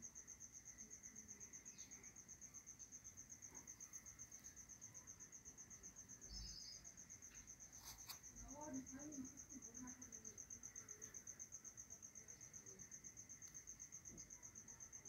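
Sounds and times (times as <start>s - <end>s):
cricket chirping: 0.0s - 15.0s.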